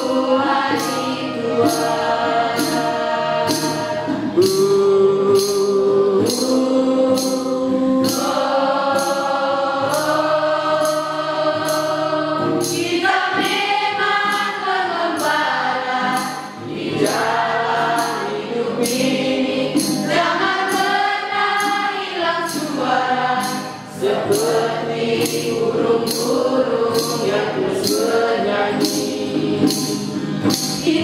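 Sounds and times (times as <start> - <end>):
acoustic guitar: 0.0 - 31.0
children's choir singing: 0.0 - 31.0.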